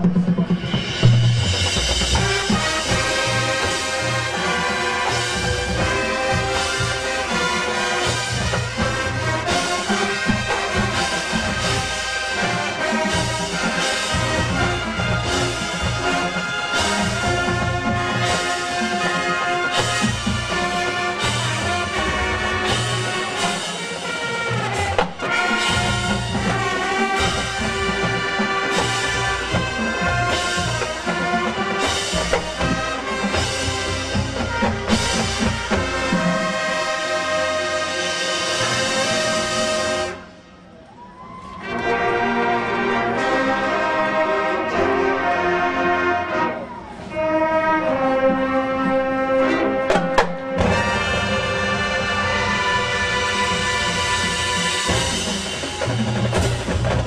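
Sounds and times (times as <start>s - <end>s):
brass band playing: 0.0s - 57.0s
marching drumline: 0.0s - 57.0s.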